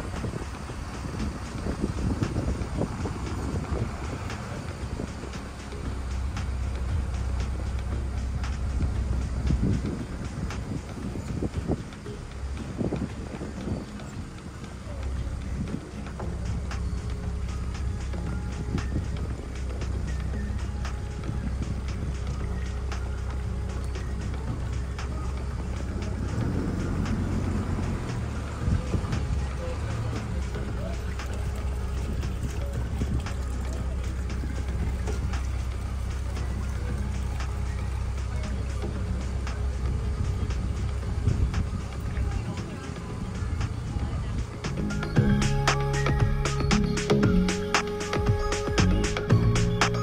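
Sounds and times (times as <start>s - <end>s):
boat engine idling: 0.0s - 50.0s.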